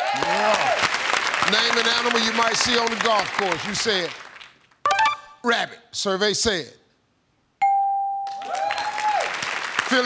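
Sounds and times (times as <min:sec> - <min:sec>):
audience applause: 0:00.0 - 0:04.6, 0:08.4 - 0:10.0.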